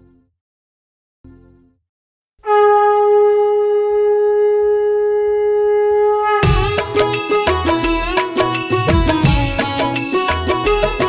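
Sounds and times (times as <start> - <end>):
conch shell blown: 2.4 - 11.0.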